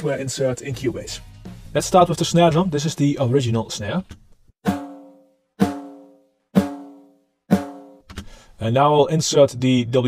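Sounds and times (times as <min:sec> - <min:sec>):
snare drum hits ringing: 0:04.7 - 0:08.0.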